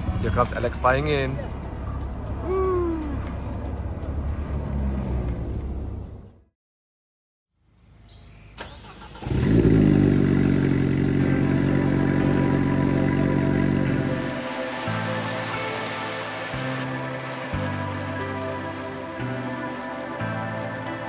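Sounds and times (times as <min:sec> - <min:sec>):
background music: 0:00.0 - 0:05.8, 0:10.8 - 0:21.0
car engine revving: 0:01.4 - 0:06.4, 0:08.8 - 0:14.6.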